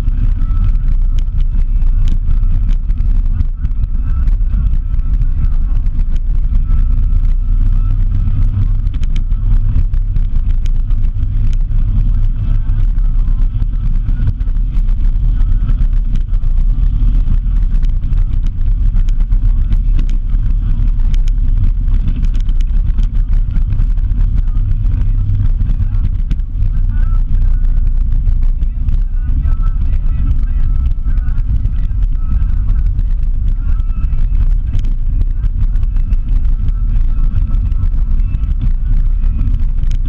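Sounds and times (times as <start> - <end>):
vehicle driving on dirt road: 0.0 - 40.0.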